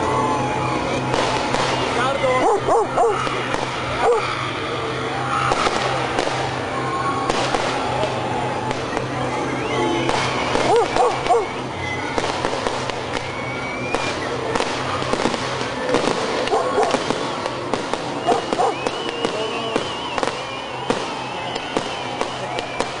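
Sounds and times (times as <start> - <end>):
low rumble of music: 0.0 - 23.0
voices shouting: 0.0 - 23.0
fireworks bangs and crackles: 0.9 - 4.6, 5.2 - 23.0
high wavering whistle: 18.0 - 23.0.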